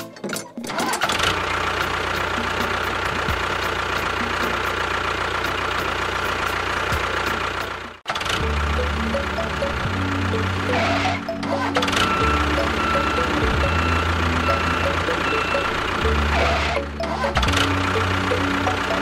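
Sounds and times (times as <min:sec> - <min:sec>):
tractor engine running: 0:00.3 - 0:19.0
background music: 0:07.8 - 0:19.0.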